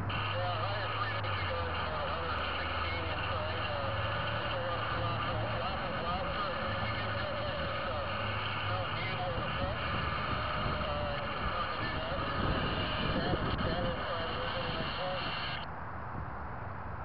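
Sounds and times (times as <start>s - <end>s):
muffled voice: 0.0s - 15.7s.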